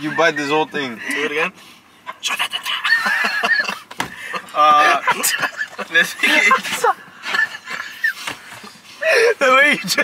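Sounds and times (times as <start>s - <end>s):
young men laughing: 0.0s - 10.0s.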